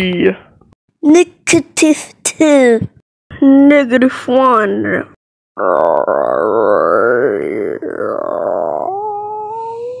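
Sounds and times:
person's wordless howl-like voice: 5.6s - 10.0s.

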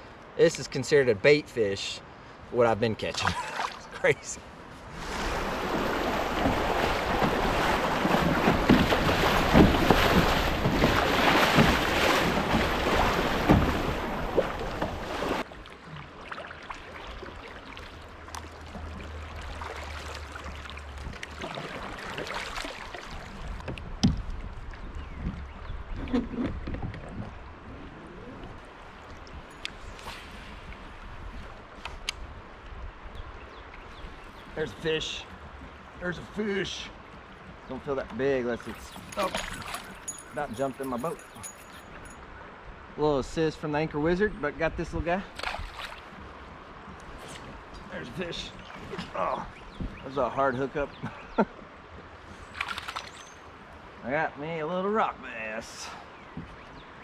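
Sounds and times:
rush of water: 0.0s - 57.0s
running water: 2.6s - 42.2s
paddle splashes: 3.0s - 4.1s, 4.8s - 27.4s, 33.7s - 40.3s, 45.2s - 54.0s.

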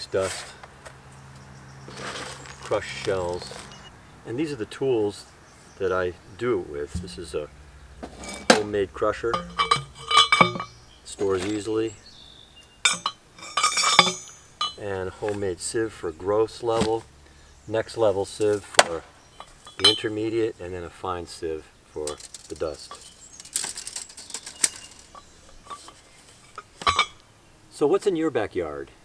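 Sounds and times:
tools clicking and knocking: 6.9s - 7.4s, 8.0s - 11.8s, 12.8s - 14.8s, 22.1s - 27.2s
metal rod clinking in tube: 8.1s - 11.8s, 12.8s - 14.9s, 19.4s - 20.1s, 22.1s - 27.2s.

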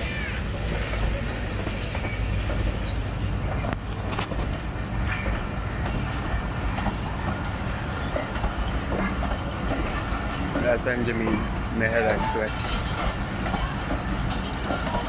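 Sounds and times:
steel wheels rumbling on rail: 0.0s - 15.0s.

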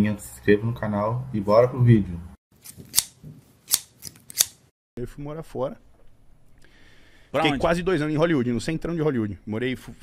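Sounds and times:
scissor snips: 2.6s - 4.7s.

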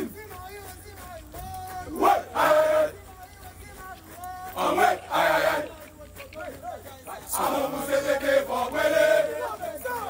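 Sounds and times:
group chanting in unison: 1.8s - 3.0s, 4.5s - 5.8s, 6.4s - 10.0s.

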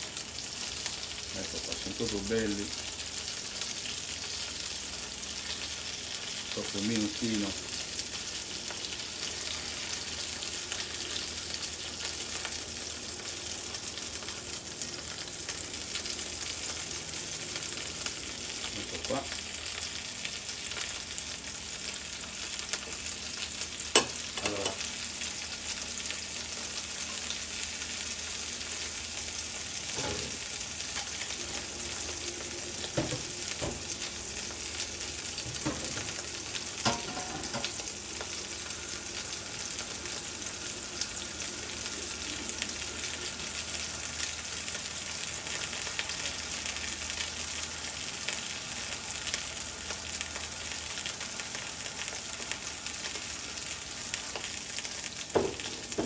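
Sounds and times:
prawns sizzling in a pan: 0.0s - 56.0s.

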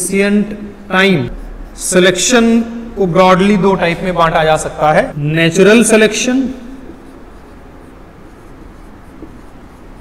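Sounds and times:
steady background hiss: 0.0s - 10.0s
marker scratching on whiteboard: 1.2s - 2.6s, 6.6s - 10.0s.

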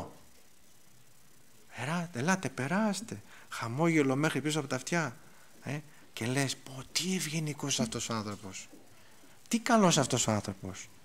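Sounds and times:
faint room hiss: 0.0s - 11.0s
man speaking: 1.7s - 8.8s, 9.5s - 11.0s.

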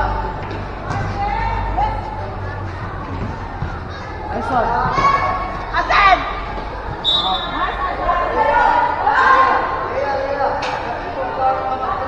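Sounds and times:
high whistle: 7.0s - 7.7s
people shouting: 7.0s - 10.0s.

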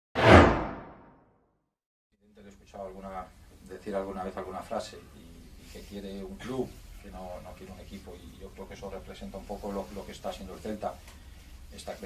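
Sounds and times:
whoosh sound effect: 0.2s - 1.1s.

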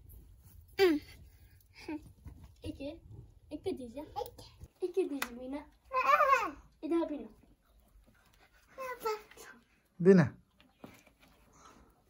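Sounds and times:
young child's voice: 3.6s - 7.3s, 8.8s - 9.6s.

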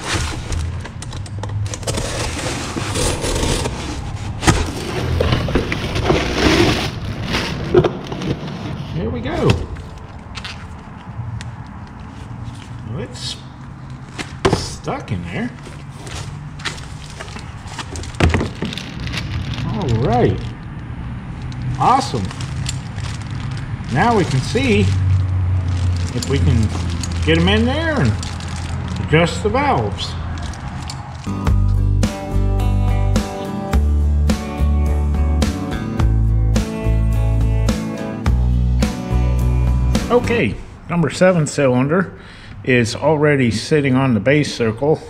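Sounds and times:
cardboard box tearing: 0.0s - 0.8s, 1.8s - 7.8s, 15.6s - 19.8s
plastic bag crinkling: 15.6s - 20.7s, 21.4s - 29.2s.

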